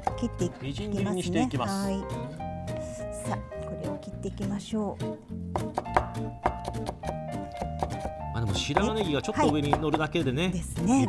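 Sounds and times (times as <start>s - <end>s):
background music: 0.0s - 11.0s
knife tapping on cutting board: 5.6s - 10.2s.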